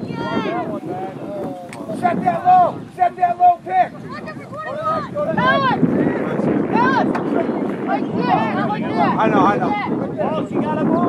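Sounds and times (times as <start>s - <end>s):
spectators shouting: 0.0s - 9.9s
wind on microphone: 0.0s - 11.0s.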